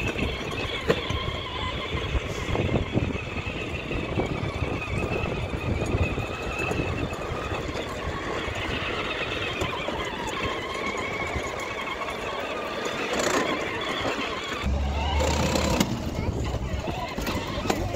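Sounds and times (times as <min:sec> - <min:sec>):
electric motors whining: 0:00.0 - 0:17.9
plastic wheels rattling on paving: 0:00.0 - 0:17.9.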